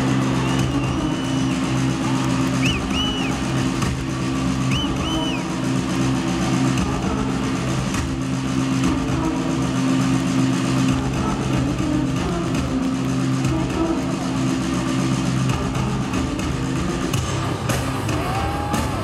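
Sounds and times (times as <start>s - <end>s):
distorted electric guitar and bass: 0.0s - 19.0s
short high whistle-like tones: 0.4s - 3.6s, 4.6s - 5.5s.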